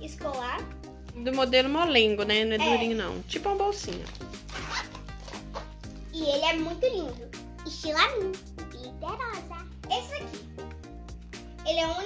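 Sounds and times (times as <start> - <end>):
quiet background music: 0.0 - 12.0
zipper rasping: 4.1 - 5.9.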